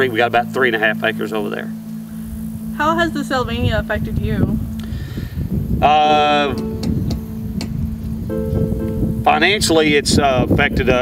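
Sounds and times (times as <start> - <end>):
soft background music: 0.0 - 11.0
wind rumble on microphone: 2.2 - 11.0.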